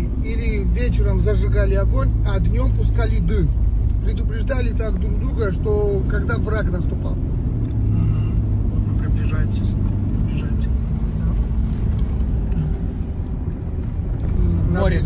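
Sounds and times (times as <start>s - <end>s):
car engine drone: 0.0s - 15.0s.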